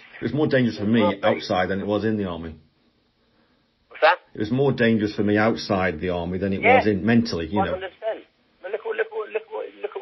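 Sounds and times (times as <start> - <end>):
man speaking over telephone: 0.0 - 2.6, 4.0 - 10.0.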